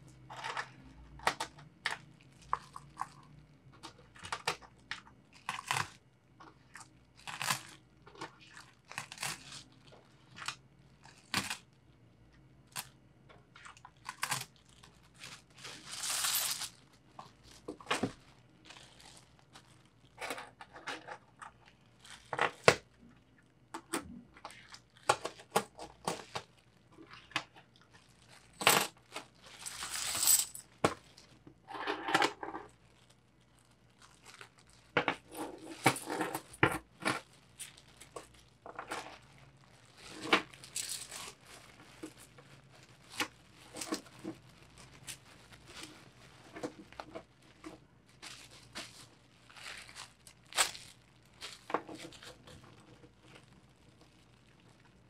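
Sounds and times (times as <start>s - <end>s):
plastic bag crinkling: 6.6s - 11.8s, 13.6s - 20.6s, 21.5s - 23.0s, 24.4s - 31.4s, 32.6s - 55.0s
metal coins clinking on wooden table: 16.0s - 16.6s, 29.6s - 30.6s.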